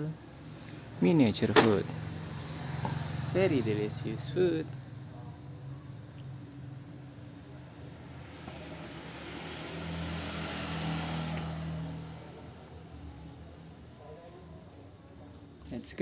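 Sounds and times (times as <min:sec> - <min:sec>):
motor vehicle passing by: 0:00.2 - 0:15.7.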